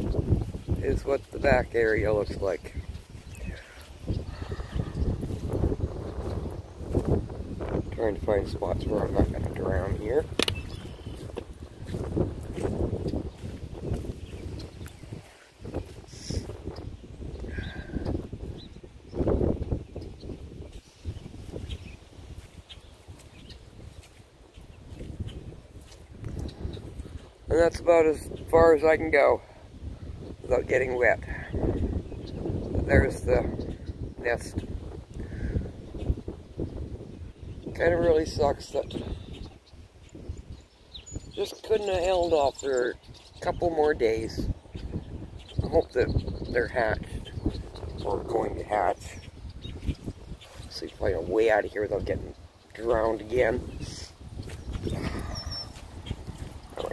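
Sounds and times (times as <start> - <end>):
wind rumbling on microphone: 0.0 - 56.9
footsteps squelching through wet grass: 2.8 - 7.8, 10.3 - 16.8, 20.7 - 27.4, 54.2 - 56.9
high bird chirp: 8.7 - 27.4, 47.2 - 56.9.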